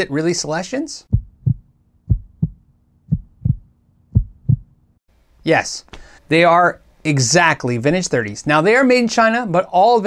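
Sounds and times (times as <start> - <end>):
heartbeat thumps: 1.1 - 4.8.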